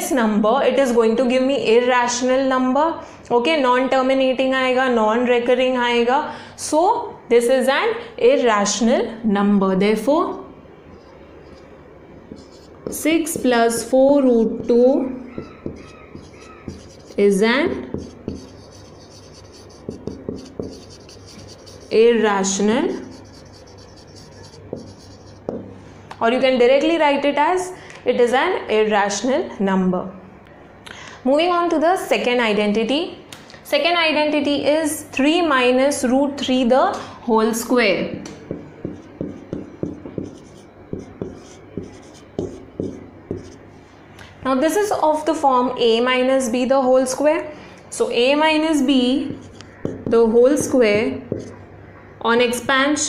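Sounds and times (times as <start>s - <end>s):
marker pen writing on whiteboard: 11.0s - 25.7s, 38.5s - 43.6s, 49.1s - 51.6s.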